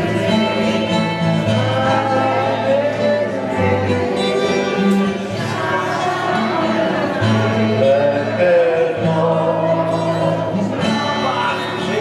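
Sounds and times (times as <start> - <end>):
guitar: 0.0 - 12.0
man singing: 0.0 - 12.0.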